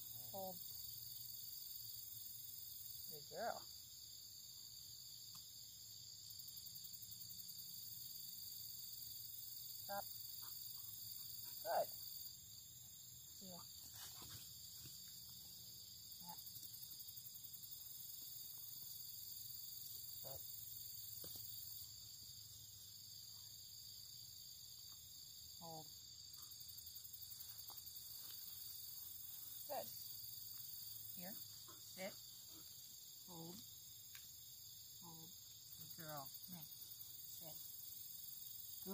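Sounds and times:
crickets and insects chirping: 0.0s - 38.9s.

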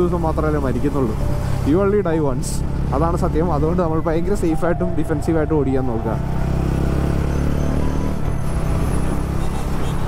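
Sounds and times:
wind and road rush: 0.0s - 10.0s.

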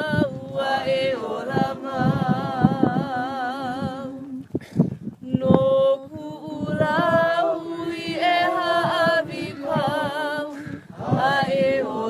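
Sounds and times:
voices singing a held note: 0.0s - 3.9s, 6.6s - 12.0s.

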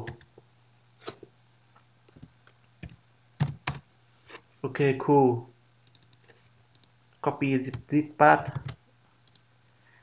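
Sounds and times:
computer keyboard typing: 2.8s - 3.8s, 5.8s - 6.9s, 8.5s - 9.4s.

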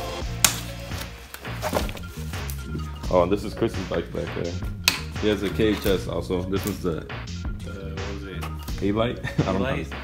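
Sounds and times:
background music: 0.0s - 10.0s
packing tie snapping: 0.4s - 2.7s, 4.8s - 6.0s.

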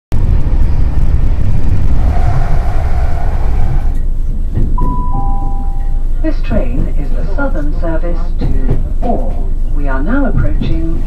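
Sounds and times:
train rumbling: 0.1s - 11.0s
falling two-note chime: 4.9s - 6.0s.

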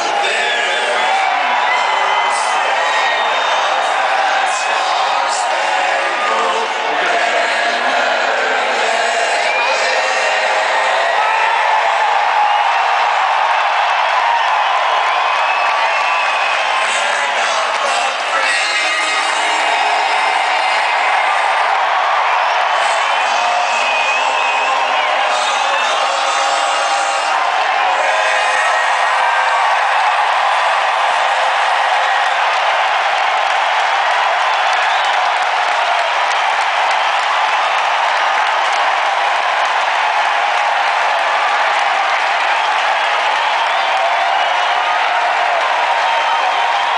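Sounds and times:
stadium crowd cheering: 0.0s - 46.9s
shrill whistles: 15.3s - 16.8s.

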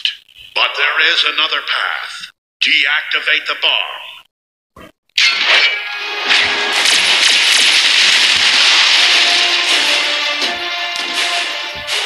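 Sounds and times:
loud cracking crash: 5.3s - 12.0s
dramatic score music: 5.7s - 12.0s.

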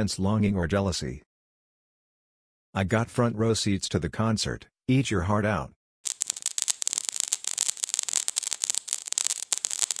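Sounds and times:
dense sharp crackling: 6.1s - 10.0s.

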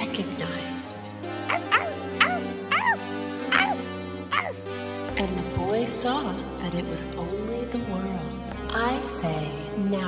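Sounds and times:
small dog yapping: 1.5s - 4.6s.

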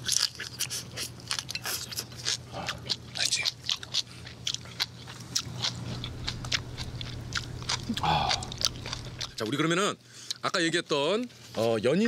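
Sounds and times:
steady low hum: 0.0s - 10.4s
mouth crunching crisp food: 0.0s - 10.6s.

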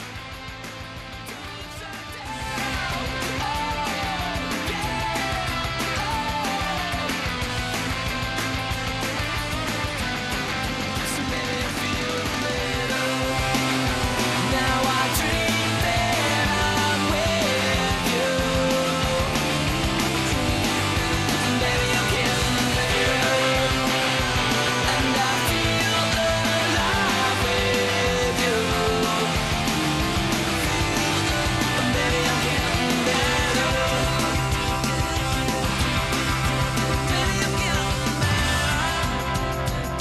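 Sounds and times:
rock music with guitar: 0.0s - 40.0s.

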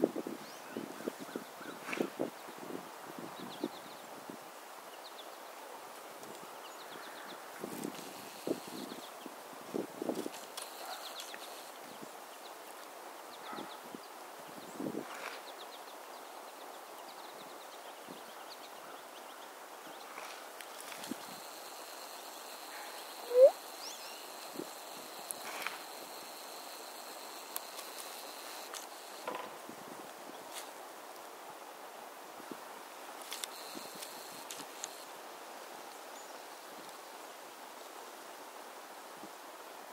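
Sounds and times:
songbirds chirping: 10.4s - 29.2s
faint high whine: 20.9s - 29.3s
short rising squeak: 23.2s - 23.5s.

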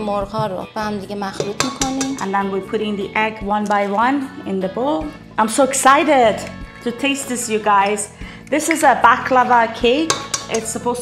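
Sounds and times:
background music with singing: 0.0s - 11.0s
eggs cracking on metal bowl: 1.4s - 2.4s, 7.8s - 11.0s.

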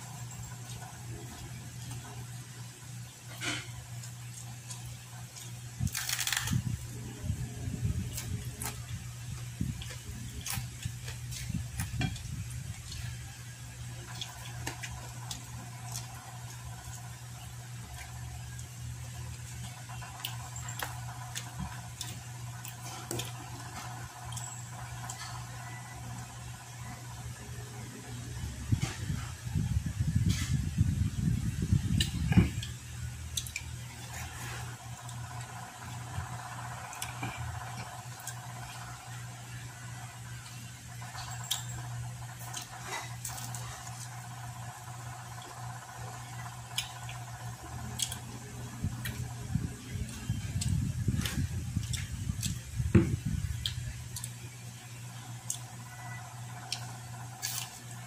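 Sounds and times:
electric fan hum: 0.0s - 58.0s
chewing crispy food: 3.2s - 6.9s, 8.0s - 27.4s, 32.0s - 52.7s, 53.5s - 58.0s.

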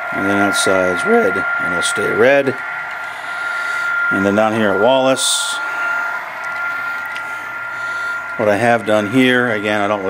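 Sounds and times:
high whine: 0.0s - 10.0s
model train whirring: 0.0s - 10.0s.

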